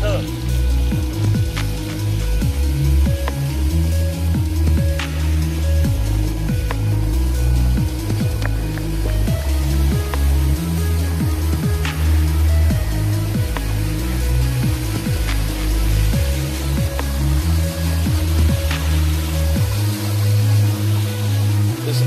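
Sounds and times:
background music with deep bass: 0.0s - 22.0s.

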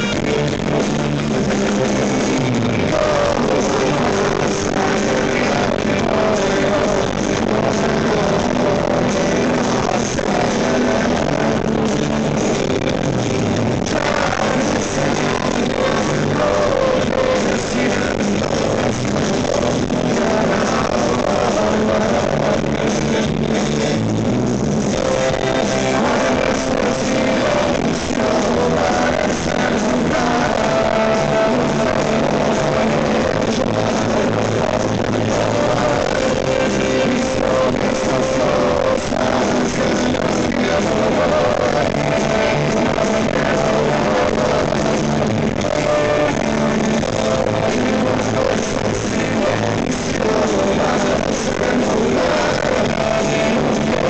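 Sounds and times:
rock band playing live: 0.0s - 54.0s.

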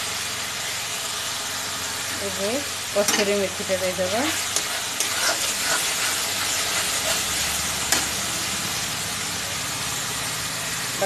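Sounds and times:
paste sizzling in hot oil: 0.0s - 11.0s
spatula stirring: 4.2s - 8.3s.

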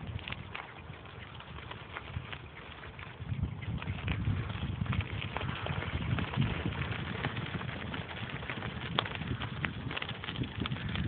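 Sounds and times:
bicycle tyres crunching on gravel: 0.0s - 11.0s
wind buffeting microphone: 0.0s - 11.0s.

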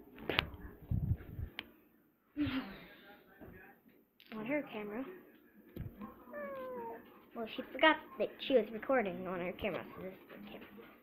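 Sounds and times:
cat meowing: 6.3s - 7.1s.

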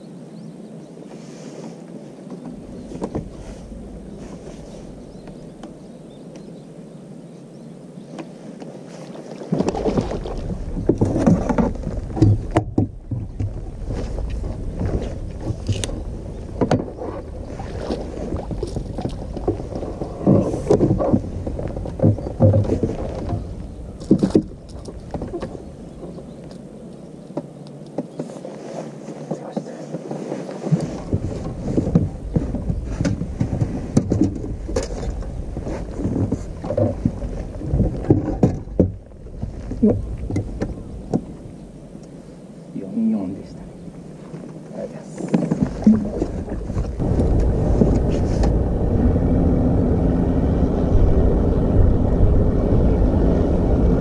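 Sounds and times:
water noise: 0.0s - 54.0s
knocks and clatter on boat deck: 2.3s - 3.7s, 9.5s - 26.5s, 29.1s - 41.5s, 44.3s - 48.7s
steady low rumble: 2.5s - 8.0s, 9.6s - 27.3s, 30.8s - 54.0s.

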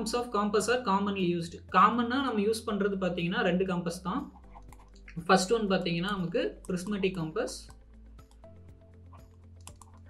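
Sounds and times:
stylus tapping on tablet screen: 7.7s - 10.0s.

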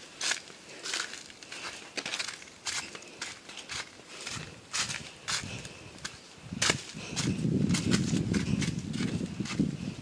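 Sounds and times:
footsteps crunching on dry leaves: 0.0s - 10.0s.

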